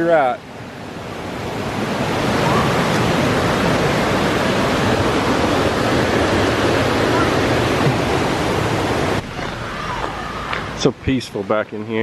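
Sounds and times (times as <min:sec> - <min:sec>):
mountain river rushing: 0:00.0 - 0:12.0.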